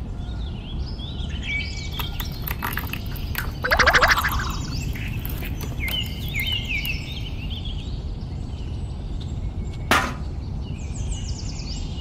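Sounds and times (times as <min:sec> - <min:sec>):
small birds chirping: 0:01.4 - 0:08.8.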